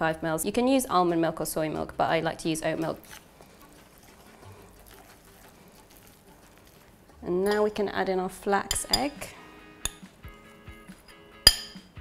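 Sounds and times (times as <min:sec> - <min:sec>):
wooden spoon stirring batter: 0:02.4 - 0:09.3.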